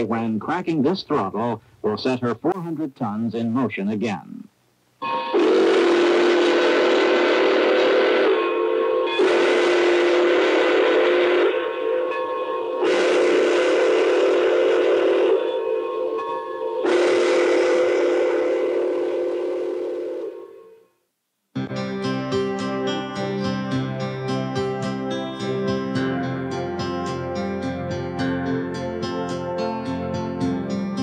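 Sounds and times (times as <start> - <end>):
steam whistle chord blasts: 5.0 - 21.0, 21.6 - 31.0.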